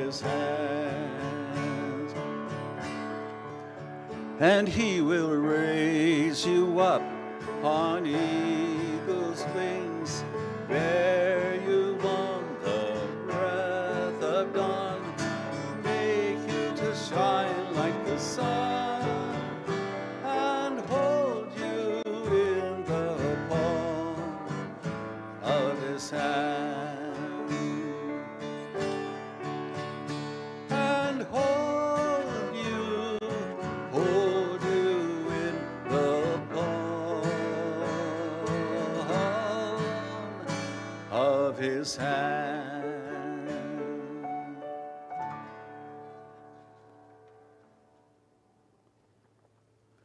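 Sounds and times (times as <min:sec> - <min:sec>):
acoustic guitar: 0:00.0 - 0:50.0.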